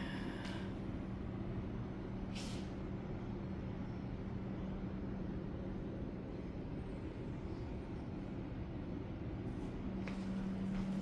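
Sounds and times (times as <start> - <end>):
steady low hum: 0.0 - 11.0
short hiss: 2.3 - 2.8.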